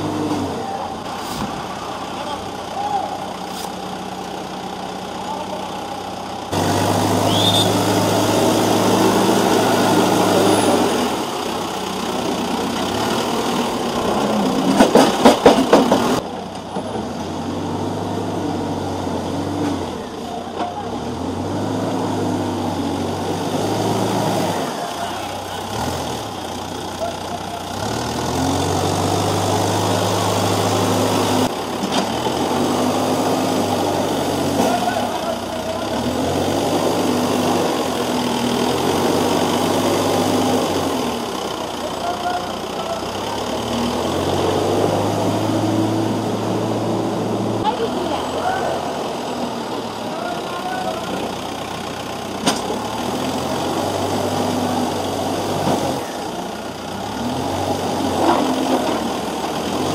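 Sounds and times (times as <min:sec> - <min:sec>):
diesel engine revving: 0:00.0 - 0:59.9.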